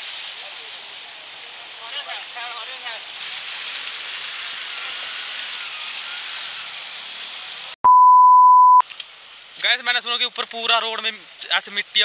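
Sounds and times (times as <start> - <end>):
floodwater rushing: 0.0 - 7.8
loud pure beep: 7.8 - 8.8.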